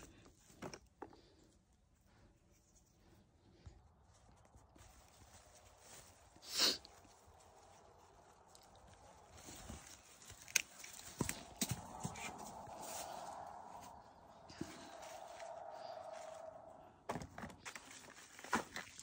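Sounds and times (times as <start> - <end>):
leaves rustling: 4.1 - 16.8
vines snapping and knocking: 8.4 - 12.3.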